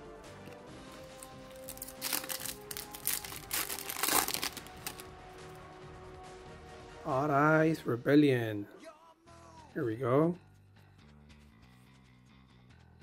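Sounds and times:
faint background music: 0.0s - 13.0s
foil packaging crinkling: 1.0s - 5.1s.

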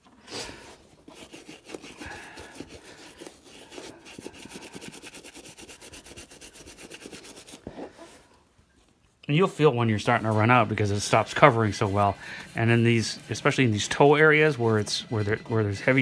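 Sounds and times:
brush scrubbing polish on leather shoe: 0.6s - 8.2s, 9.6s - 16.0s.

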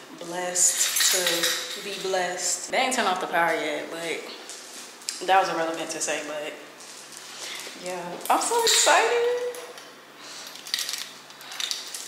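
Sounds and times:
small objects clicking and rattling: 10.4s - 12.0s.

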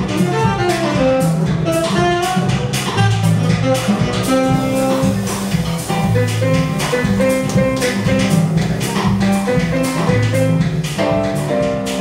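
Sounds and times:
saxophone playing: 0.0s - 8.4s
drum kit cymbals: 0.0s - 12.0s
upright double bass: 0.0s - 12.0s.

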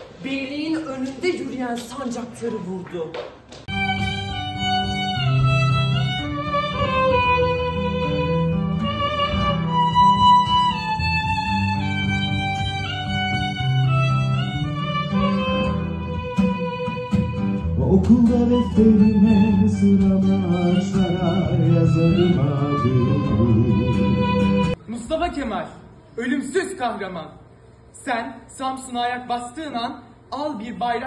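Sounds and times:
acoustic guitar chords: 3.7s - 24.8s
violin melody: 3.7s - 24.8s.

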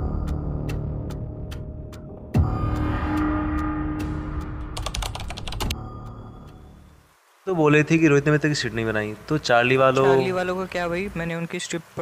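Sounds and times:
keyboard typing clicks: 4.8s - 5.8s.

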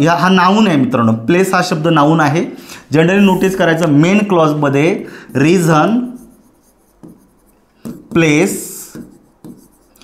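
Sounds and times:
pen scraping and tapping on screen: 6.1s - 10.0s.

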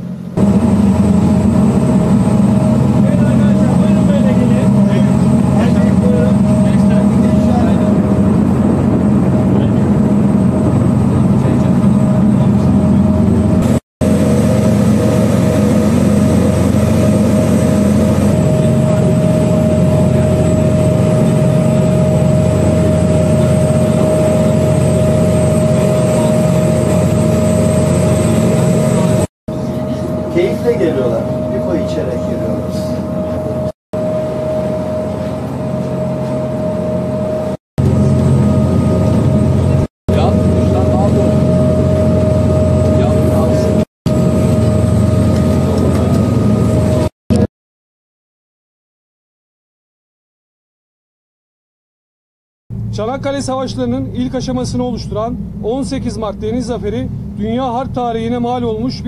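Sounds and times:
constant hum: 0.0s - 47.5s
ship engine rumble: 0.0s - 47.5s, 52.7s - 59.0s.

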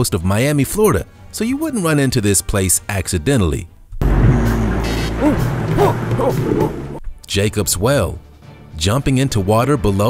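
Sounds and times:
loud rushing rumble: 4.0s - 7.0s.

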